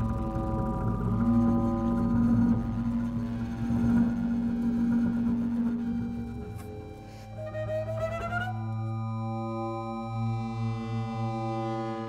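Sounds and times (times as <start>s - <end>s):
bowed double bass: 0.0s - 12.0s.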